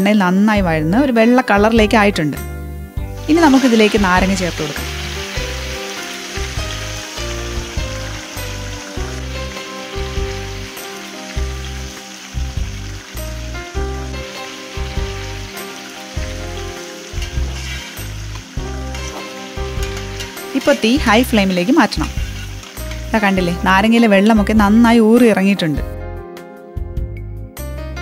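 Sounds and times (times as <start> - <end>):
food sizzling in hot oil: 2.2 - 25.6
metal spoon stirring: 17.2 - 23.2
background music with low beat: 25.8 - 28.0.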